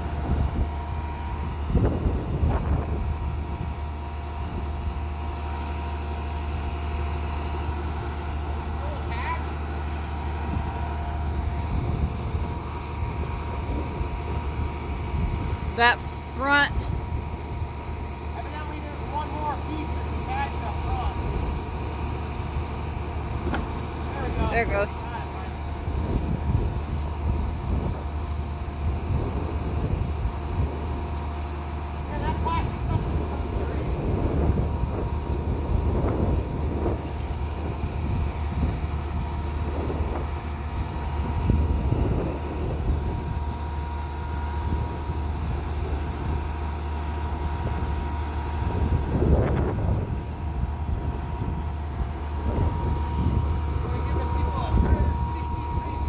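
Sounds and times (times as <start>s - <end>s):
faint steady whine: 0.0s - 56.0s
truck engine running: 0.0s - 56.0s.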